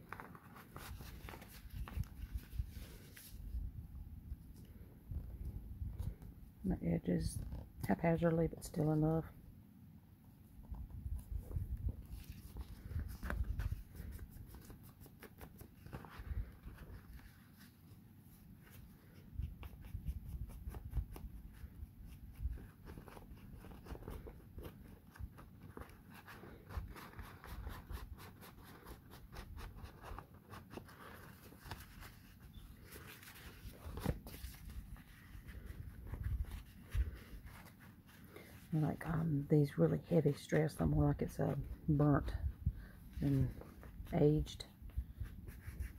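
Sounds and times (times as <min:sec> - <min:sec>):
paper rustling: 0:00.0 - 0:03.6, 0:10.6 - 0:39.2.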